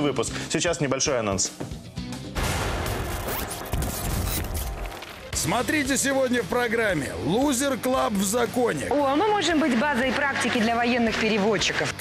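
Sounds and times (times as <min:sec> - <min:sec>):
scratchy glitchy noise effects: 0:02.6 - 0:05.8.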